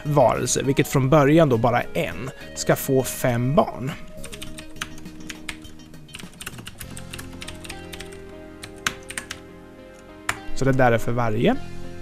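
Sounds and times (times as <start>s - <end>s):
soft background music: 0.0s - 12.0s
computer keyboard typing: 4.2s - 9.4s.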